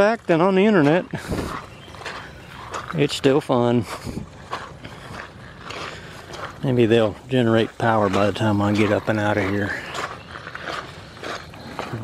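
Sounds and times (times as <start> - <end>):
footsteps over rocks and mud: 0.0 - 12.0.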